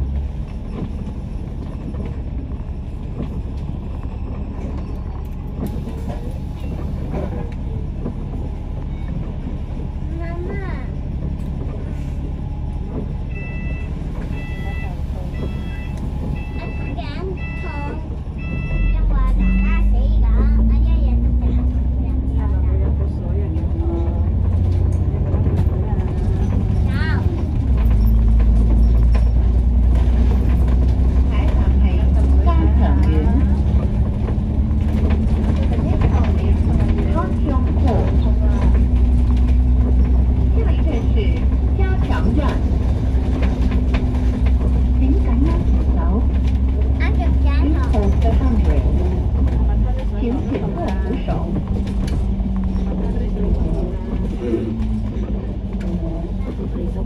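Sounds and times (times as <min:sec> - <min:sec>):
bus engine whining under load: 0:00.0 - 0:57.0.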